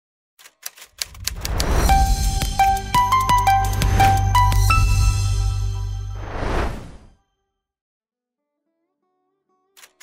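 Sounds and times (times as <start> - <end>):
typewriter keys clicking: 0.4 - 1.7
melody: 1.7 - 6.2.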